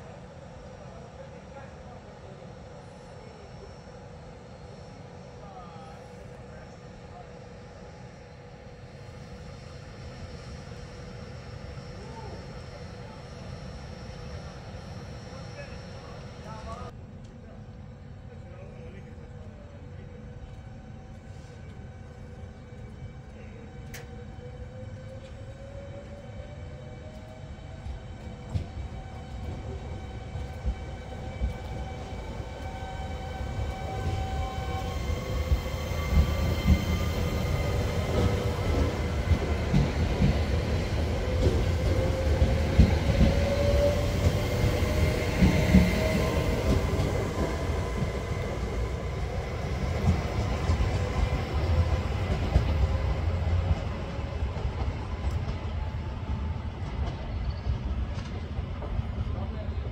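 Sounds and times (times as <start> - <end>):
train rumble: 0.0 - 59.9.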